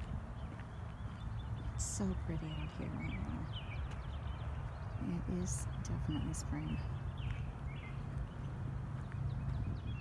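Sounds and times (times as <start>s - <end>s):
distant bird chirps: 0.0s - 10.0s
footsteps on pavement: 0.0s - 10.0s.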